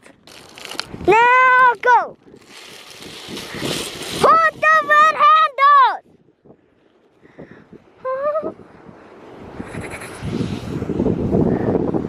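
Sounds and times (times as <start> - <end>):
wind buffeting microphone: 0.6 - 12.0.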